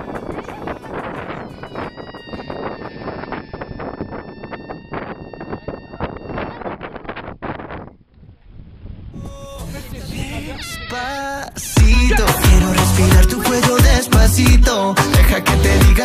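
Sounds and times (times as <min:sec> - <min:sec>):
wind buffeting microphone: 0:00.0 - 0:14.0
balloon squealing air: 0:00.2 - 0:07.0.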